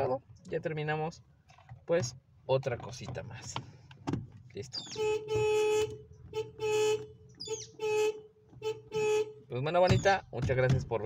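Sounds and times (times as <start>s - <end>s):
car horn beeping: 4.8s - 10.1s.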